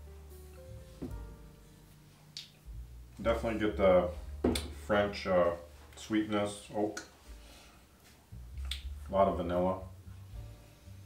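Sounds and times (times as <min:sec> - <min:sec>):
faint low rumble: 0:00.0 - 0:06.2.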